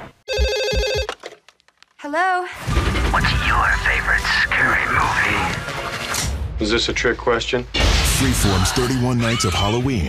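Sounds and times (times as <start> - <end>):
landline telephone ringing: 0.3 - 1.2.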